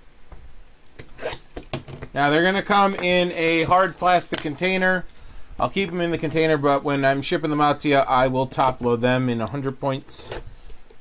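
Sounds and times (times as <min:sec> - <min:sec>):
crinkly rustle: 0:02.4 - 0:05.3.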